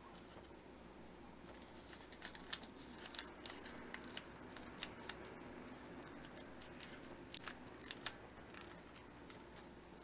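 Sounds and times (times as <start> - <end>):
paper rustling and crackling: 1.4 - 10.0.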